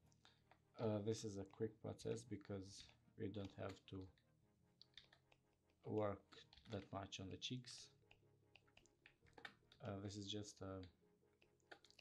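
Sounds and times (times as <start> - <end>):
voice: 0.8 - 4.1, 5.9 - 7.9, 9.8 - 10.9
computer mouse clicks: 4.8 - 6.9, 8.0 - 9.9, 10.8 - 12.0.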